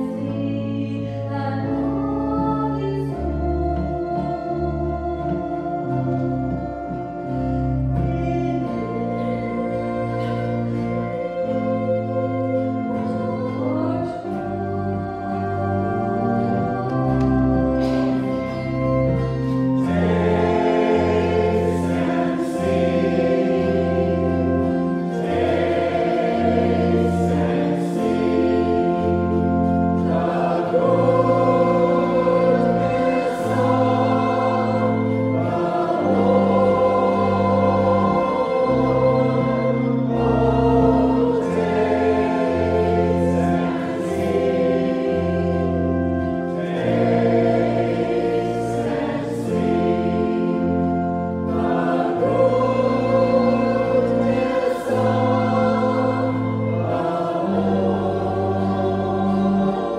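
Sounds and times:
choir singing a hymn: 0.0 - 59.9
sustained organ chords: 0.0 - 59.9.

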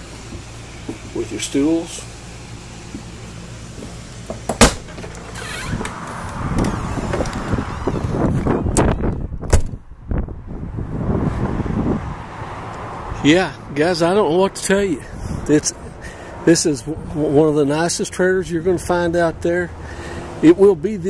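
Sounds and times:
footsteps: 2.9 - 4.5
sharp knock: 4.3 - 5.1
microphone handling noise: 4.6 - 10.3
wind rumbling on microphone: 5.4 - 12.4.

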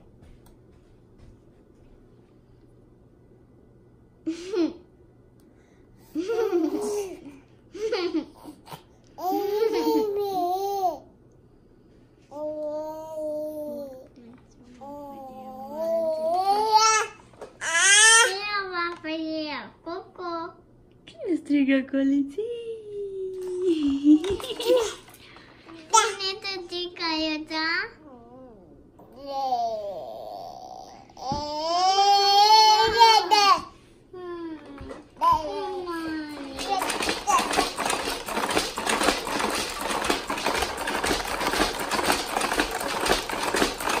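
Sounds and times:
plastic toys clattering: 23.7 - 26.1, 36.4 - 44.0.

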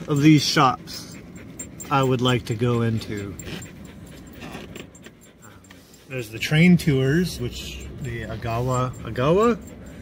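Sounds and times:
car low rumble: 0.0 - 10.0.

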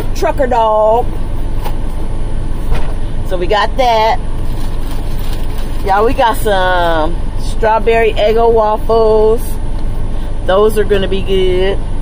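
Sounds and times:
truck idling rumble: 0.0 - 12.0.

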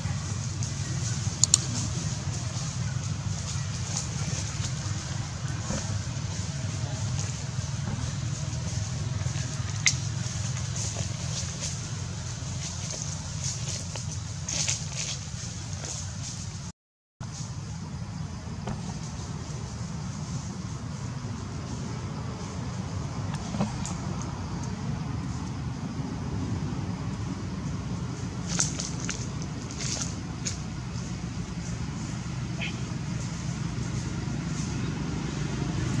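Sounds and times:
motor engine droning: 0.0 - 14.5, 18.6 - 36.0
low outdoor rumble: 0.0 - 36.0.

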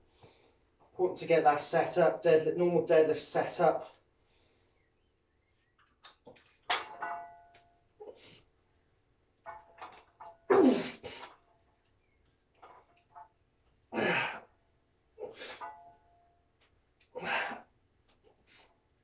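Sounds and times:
metal weight plates clanking: 6.3 - 7.8, 9.3 - 10.5, 15.4 - 16.2
forceful breath or grunt: 14.0 - 14.5, 17.2 - 17.7.

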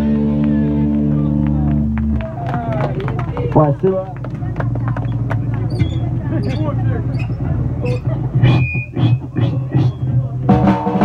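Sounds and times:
voices talking and calling out: 0.6 - 10.6.

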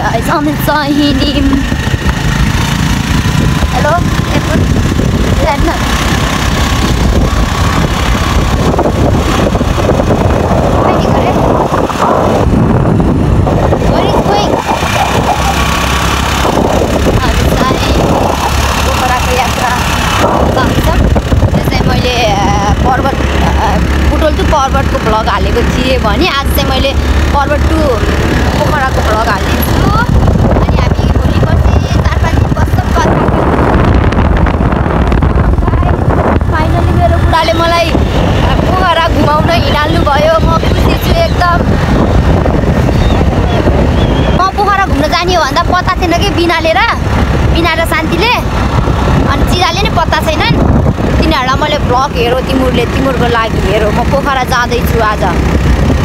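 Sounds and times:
motorbike engine running: 0.0 - 56.0
wind buffeting microphone: 0.0 - 56.0
person talking: 13.8 - 15.7, 16.9 - 33.3, 44.4 - 48.5, 49.2 - 55.4.

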